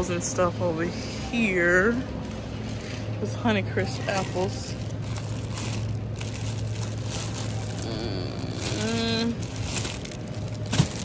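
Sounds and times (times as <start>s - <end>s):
steady low hum: 0.0s - 11.0s
plastic bags crinkling: 2.6s - 11.0s.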